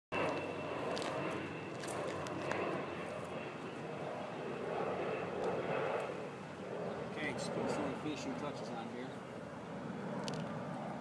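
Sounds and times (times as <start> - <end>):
engine drone: 0.1 - 11.0.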